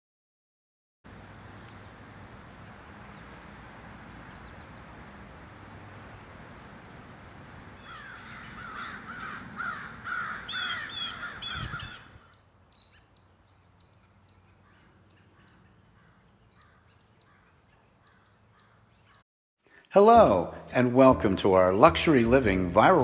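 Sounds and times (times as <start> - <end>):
harsh repeated bird calls: 7.8 - 19.2.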